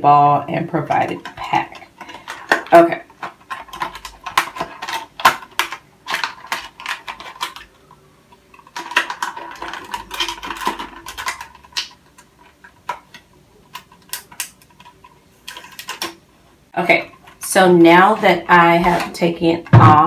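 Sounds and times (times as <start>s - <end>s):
plastic packaging crinkling: 1.1s - 16.3s.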